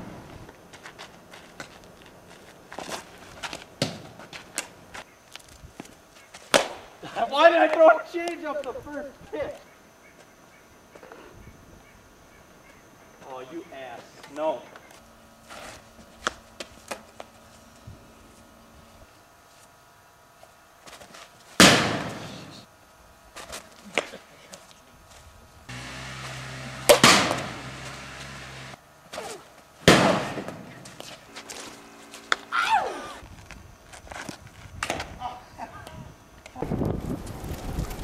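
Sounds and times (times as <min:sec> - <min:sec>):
ball banging metal garage door: 0:25.7 - 0:28.8.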